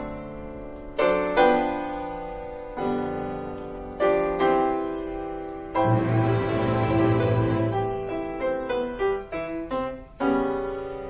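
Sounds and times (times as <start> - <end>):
loud ringing piano chord: 0.0 - 11.0
piano notes stepping downward: 0.0 - 11.0.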